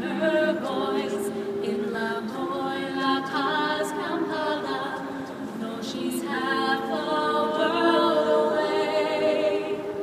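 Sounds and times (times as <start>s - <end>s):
women singing in harmony: 0.0s - 10.0s.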